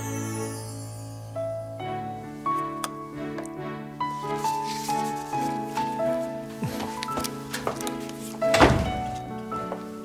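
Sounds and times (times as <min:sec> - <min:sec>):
dull thunk: 0:08.5 - 0:09.2.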